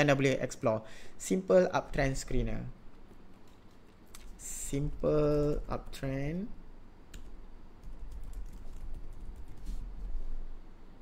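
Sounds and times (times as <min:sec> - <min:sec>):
computer keyboard typing: 0:03.3 - 0:06.1, 0:07.1 - 0:09.9.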